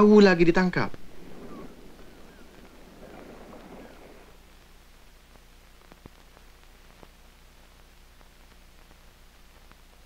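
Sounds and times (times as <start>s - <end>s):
film soundtrack hiss: 0.0s - 10.0s
low hum: 0.0s - 10.0s.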